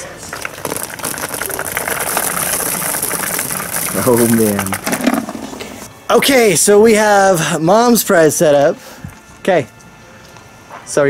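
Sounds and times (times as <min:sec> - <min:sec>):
cheese balls pattering onto vinyl: 0:00.0 - 0:05.9
cheese balls rattling in plastic tub: 0:00.3 - 0:05.6.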